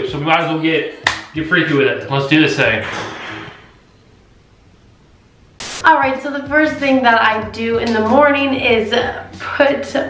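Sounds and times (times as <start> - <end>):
low room hiss: 3.5 - 7.3
burst of static-like hiss: 5.6 - 5.9
woman speaking: 5.8 - 10.0.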